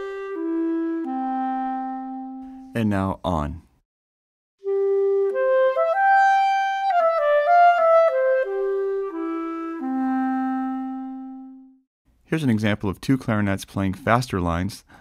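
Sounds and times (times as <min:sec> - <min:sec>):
clarinet legato phrase: 0:00.0 - 0:02.7, 0:04.6 - 0:11.8.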